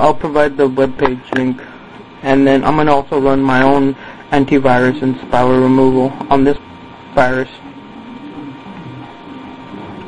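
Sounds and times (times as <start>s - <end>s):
machine hum and hiss: 0.0s - 10.0s.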